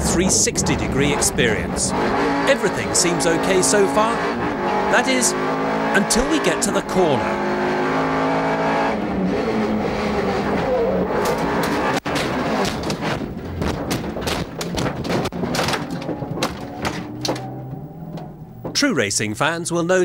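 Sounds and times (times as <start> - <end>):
car engine running hard: 0.0 - 13.5
bangs and crunches of car tumbling: 10.0 - 19.1.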